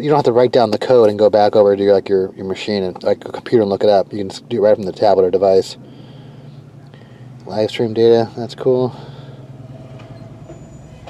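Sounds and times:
low hum in car cabin: 0.0 - 11.0
faint thin high whine: 9.6 - 11.0.

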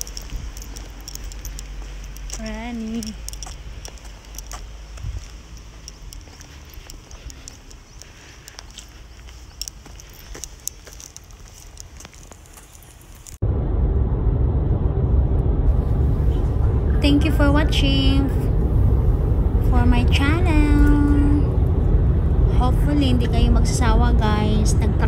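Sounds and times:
scattered clicks: 0.0 - 13.4
faint outdoor ambience: 0.0 - 25.0
car road rumble inside cabin: 13.4 - 25.0.

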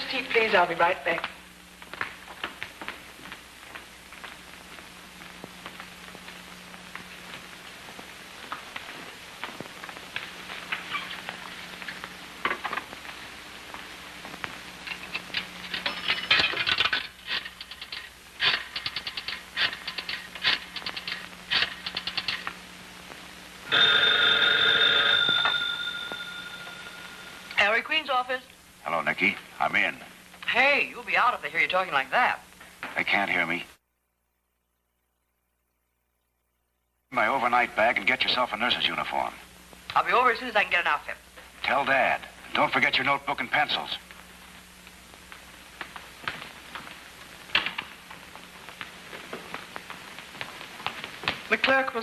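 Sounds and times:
telephone bell ringing: 23.6 - 27.6.

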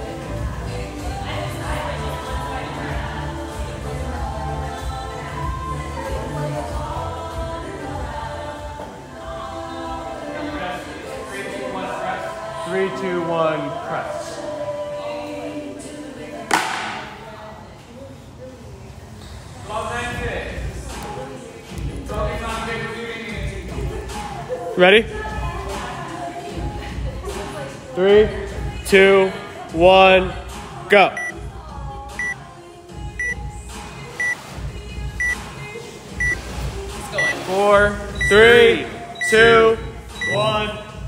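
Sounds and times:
background music with singing: 0.0 - 41.0
short high electronic beeps: 40.2 - 40.4.

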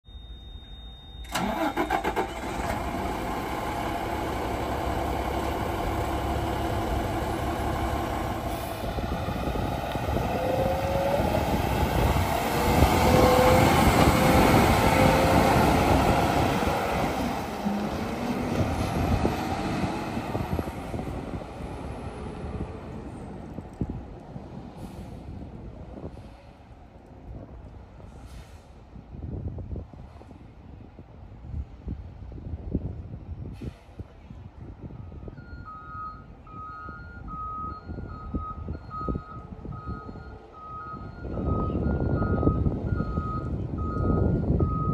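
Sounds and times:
garbage truck diesel engine: 0.6 - 26.3.

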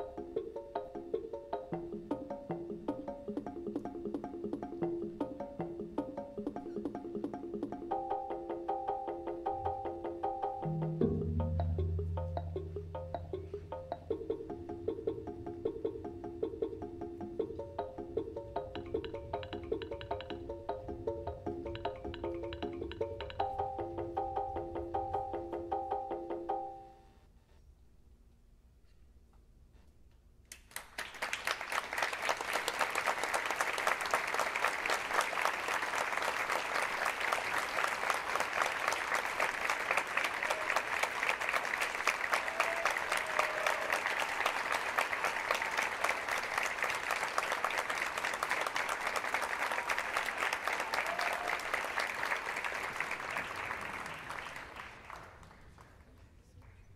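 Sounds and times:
audience applauding: 30.5 - 56.8.

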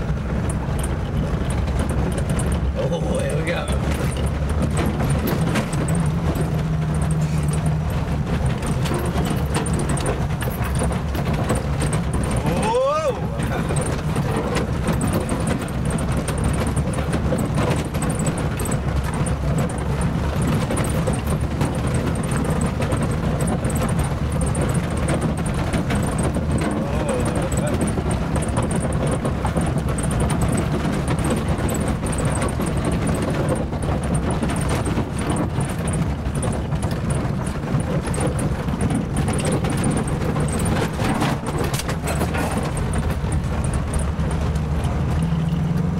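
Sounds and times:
car body knocks and rattles: 0.0 - 45.9
car engine and drivetrain drone: 0.0 - 45.9.

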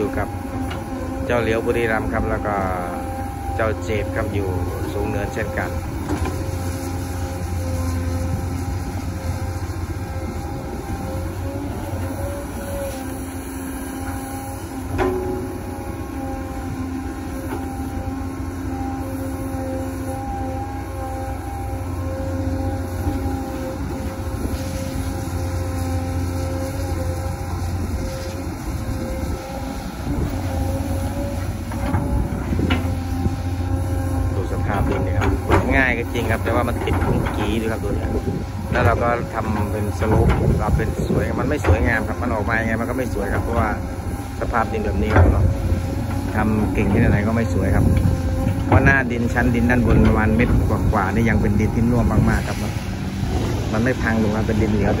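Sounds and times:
excavator diesel engine working: 0.0 - 55.0.

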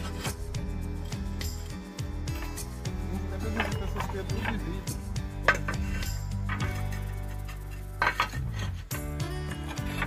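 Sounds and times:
ceramic roof tiles clinking: 2.4 - 8.9.

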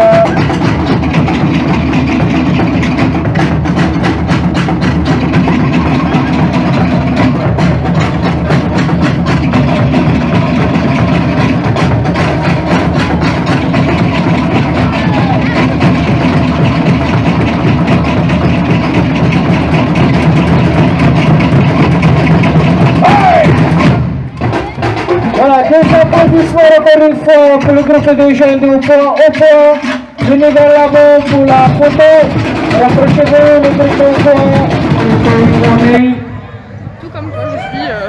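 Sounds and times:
deep drum beats: 0.0 - 36.3
wooden slit drums clattering: 23.8 - 36.0.

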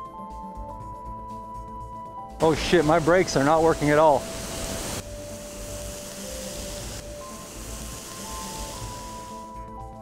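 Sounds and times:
background music of held notes: 0.0 - 10.0
waterfall rushing: 2.4 - 5.0.

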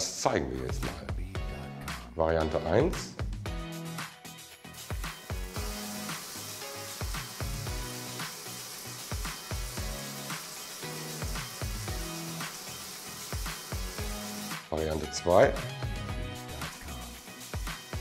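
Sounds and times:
background music with beat: 0.0 - 18.0
shower water spraying: 4.7 - 18.0.

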